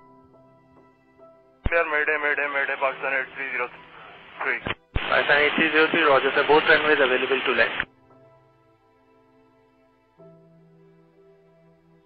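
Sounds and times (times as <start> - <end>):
man calling over radio: 1.7 - 7.9.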